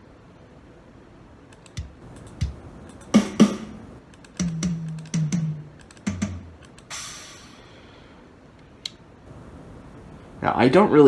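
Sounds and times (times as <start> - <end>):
drum hits: 1.8 - 3.8, 4.4 - 7.4.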